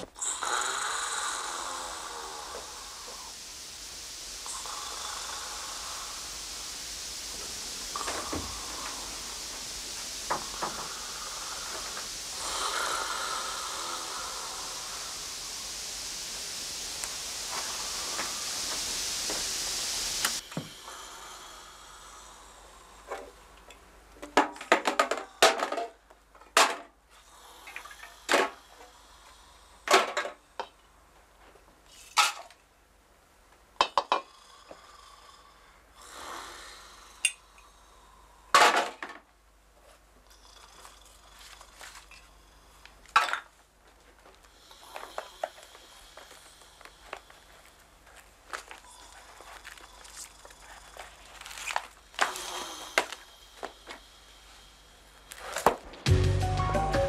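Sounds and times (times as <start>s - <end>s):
television static hissing: 0.0s - 24.7s.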